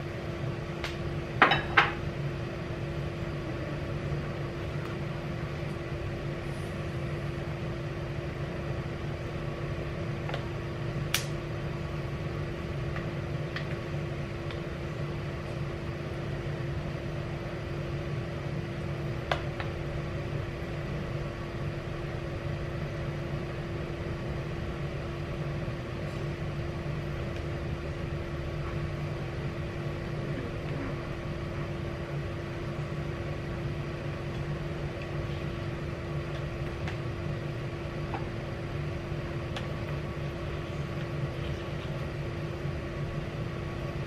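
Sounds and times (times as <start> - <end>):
steady machine hum: 0.0 - 44.0.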